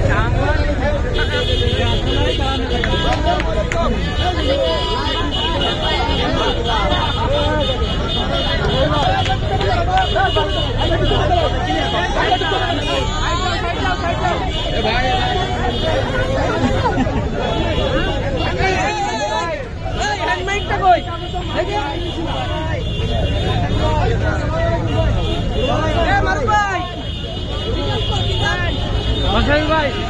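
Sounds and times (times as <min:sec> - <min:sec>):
crowd talking and calling out: 0:00.0 - 0:30.0.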